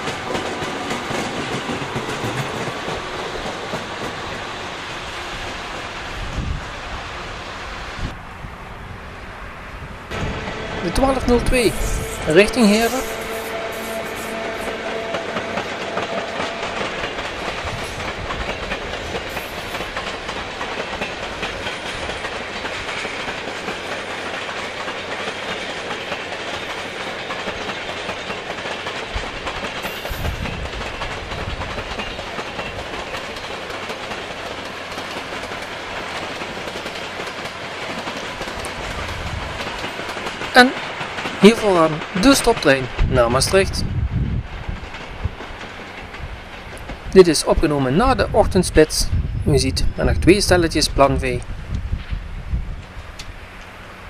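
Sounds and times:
train wheels clicking over rails: 0:00.0 - 0:06.6, 0:10.1 - 0:49.1.

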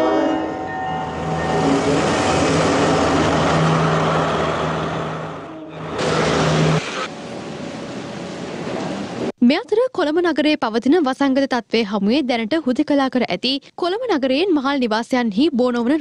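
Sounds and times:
train horn: 0:00.0 - 0:06.0
train rushing past: 0:00.0 - 0:09.3
low engine drone: 0:01.2 - 0:08.4.

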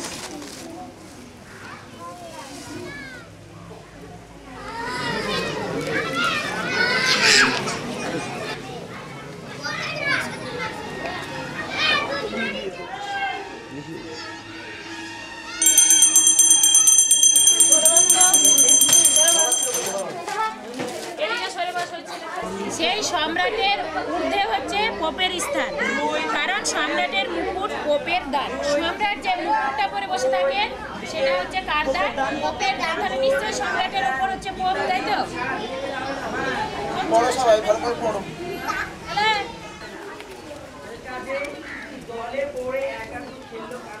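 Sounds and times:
children calling and shouting: 0:01.5 - 0:44.0.

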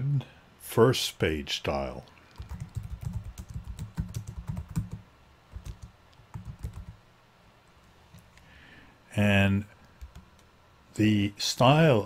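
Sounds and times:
typing on keyboard: 0:02.4 - 0:07.0, 0:10.0 - 0:10.5.

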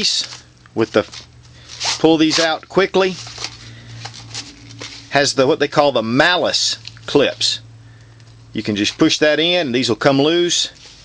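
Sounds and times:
rustling of webbing: 0:00.0 - 0:05.2.

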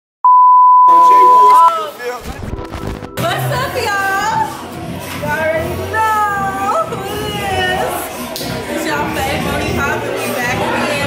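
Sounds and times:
loud electronic beep: 0:00.3 - 0:01.7
voices talking: 0:00.9 - 0:02.0.

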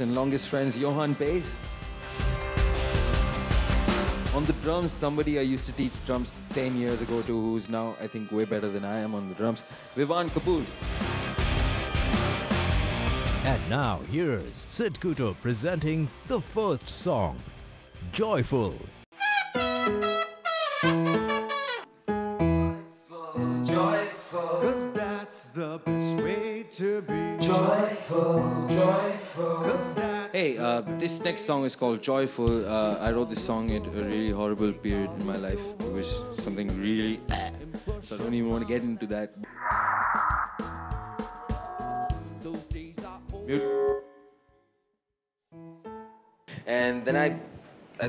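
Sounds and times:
bass: 0:01.4 - 0:07.4, 0:10.3 - 0:19.0, 0:32.5 - 0:38.9, 0:40.4 - 0:43.5
drum kit beat: 0:01.8 - 0:07.3, 0:32.5 - 0:38.3, 0:40.4 - 0:43.5
keyboard: 0:18.2 - 0:38.7
trumpet melody: 0:19.1 - 0:22.8
guitar accompaniment: 0:19.2 - 0:22.8
man singing into microphone: 0:23.1 - 0:30.6, 0:32.9 - 0:39.1, 0:42.3 - 0:43.8.

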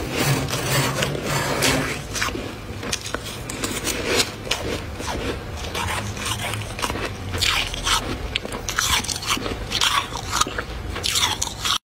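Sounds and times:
freezer frost crunching: 0:00.0 - 0:11.8.

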